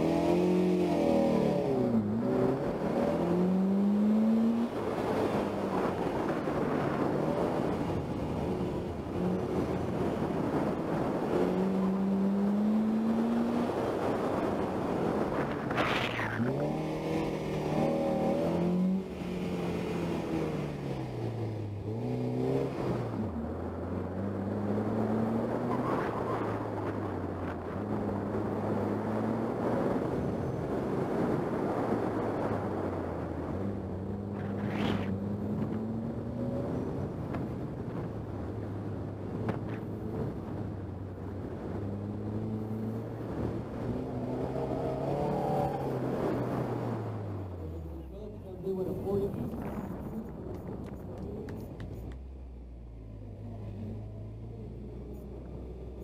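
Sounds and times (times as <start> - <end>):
car engine revving: 0.0 - 30.3, 39.2 - 56.0.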